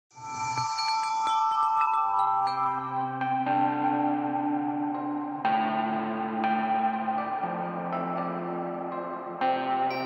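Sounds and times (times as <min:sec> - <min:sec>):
wind chime shimmer with bell tones: 0:00.2 - 0:03.2.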